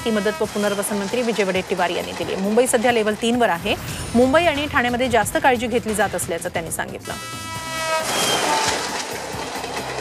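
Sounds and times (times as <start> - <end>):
electric train running: 0.0 - 10.0.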